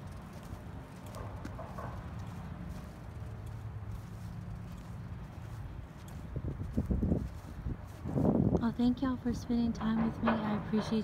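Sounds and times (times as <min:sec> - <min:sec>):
soft footsteps on grass: 0:00.0 - 0:09.8
wind rumble on microphone: 0:02.8 - 0:11.0.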